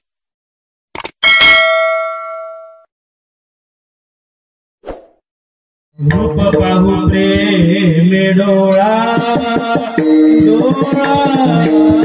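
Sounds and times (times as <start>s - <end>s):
bell ringing: 1.2s - 2.9s.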